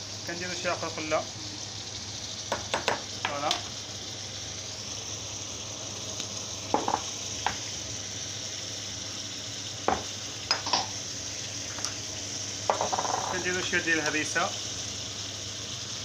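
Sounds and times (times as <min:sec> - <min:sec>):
meat sizzling in a pan: 0:00.0 - 0:16.0
sharp knocks against pan: 0:02.5 - 0:03.6, 0:06.8 - 0:07.6, 0:09.9 - 0:10.9, 0:12.7 - 0:13.4.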